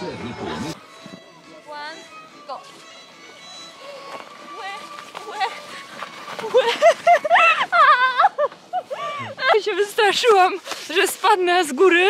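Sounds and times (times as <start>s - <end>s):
sliding on snow: 3.6s - 12.0s.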